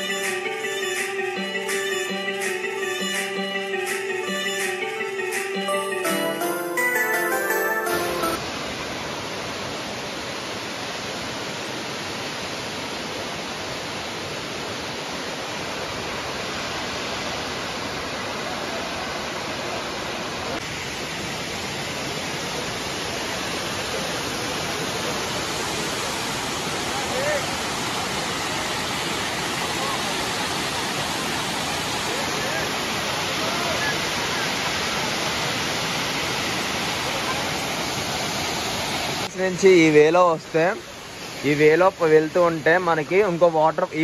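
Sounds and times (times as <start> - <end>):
waterfall rushing: 5.7 - 42.7.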